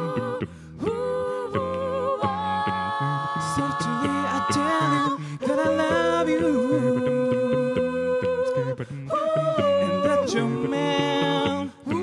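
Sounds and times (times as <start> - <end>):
a cappella soul harmony singing: 0.0 - 12.0
sung bass line: 0.0 - 12.0.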